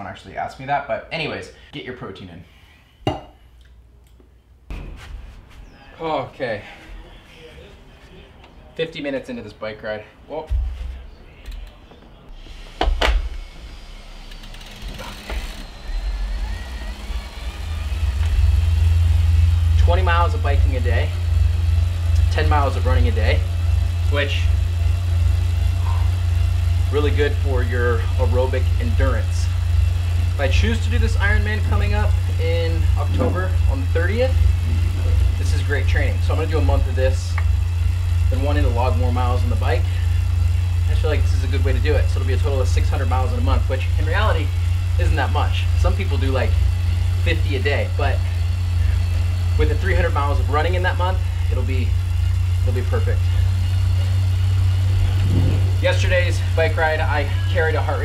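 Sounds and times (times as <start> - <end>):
bike trainer droning: 12.4 - 58.0.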